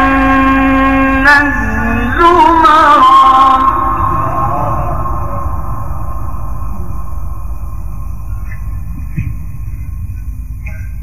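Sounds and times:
voice echo: 0.0 - 8.9
low background rumble: 0.0 - 11.0.

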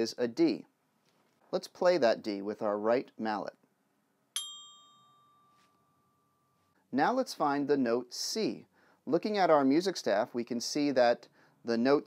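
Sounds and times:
glockenspiel bell tone: 4.4 - 6.7.

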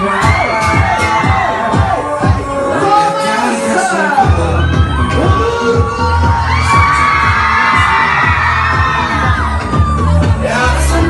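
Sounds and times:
crowd screaming and cheering: 0.0 - 11.0
pop music with heavy beat: 0.0 - 11.0.

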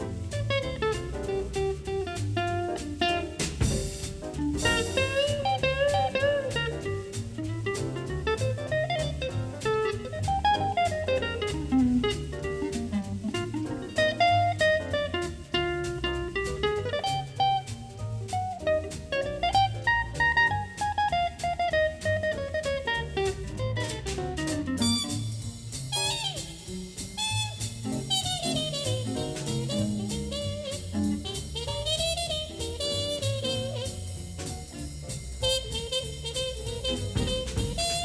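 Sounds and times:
drums: 0.0 - 38.0
jazz solo lines: 0.0 - 38.0
walking upright bass: 0.0 - 38.0.

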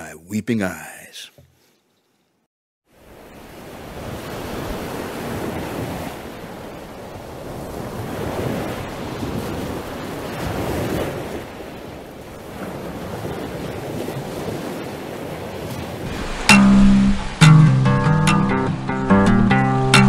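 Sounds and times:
waves breaking on rocks: 3.2 - 17.4
wind on microphone: 3.9 - 17.4.

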